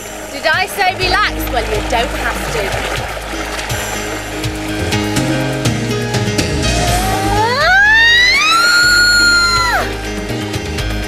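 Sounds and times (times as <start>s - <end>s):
background music: 0.0s - 11.0s
person screaming: 6.8s - 9.9s.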